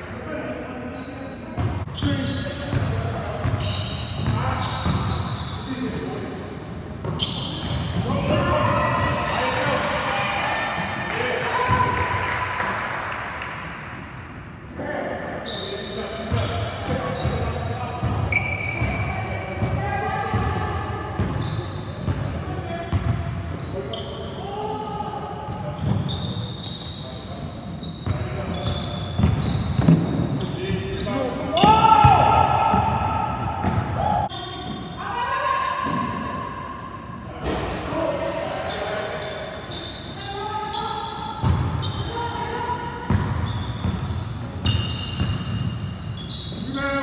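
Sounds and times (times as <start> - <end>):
sneakers squeaking: 0.6 - 12.6, 15.3 - 47.0
players shouting: 31.3 - 34.3.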